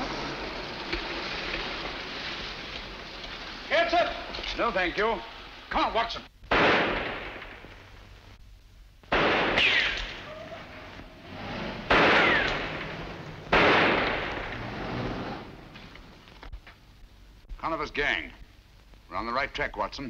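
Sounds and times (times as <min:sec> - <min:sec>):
echoing gunshots: 0:06.5 - 0:08.0, 0:09.1 - 0:10.9, 0:11.5 - 0:15.7
ricochet whine: 0:09.1 - 0:16.4.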